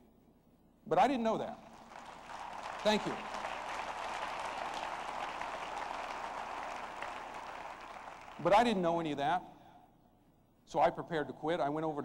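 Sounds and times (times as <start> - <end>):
crowd applauding: 1.7 - 8.7.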